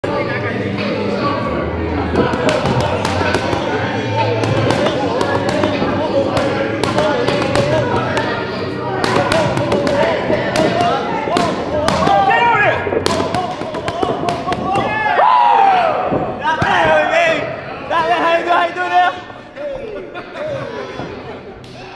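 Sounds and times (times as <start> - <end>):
voices in a gym: 0.0 - 21.9
boxing gloves smacking mitts: 2.2 - 3.7, 4.4 - 8.3, 9.0 - 12.3.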